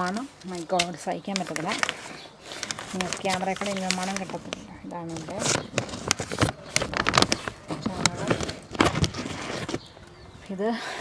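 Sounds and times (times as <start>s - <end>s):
plastic sack crinkling: 0.0s - 10.1s
compost tipping out: 0.0s - 10.3s.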